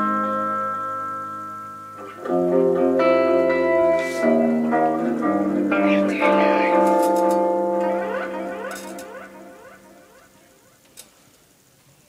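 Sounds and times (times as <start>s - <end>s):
electric guitar notes ringing: 0.0s - 11.0s
squeaky string chirps: 6.4s - 10.8s.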